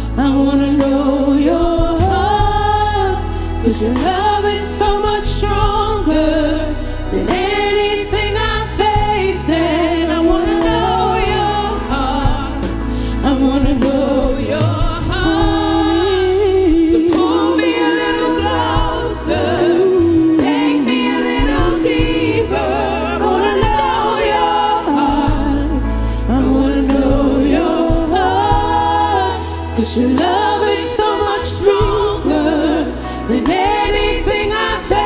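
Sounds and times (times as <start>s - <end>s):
drums: 0.0s - 35.0s
group singing gospel music: 0.0s - 35.0s
keyboard: 0.0s - 35.0s.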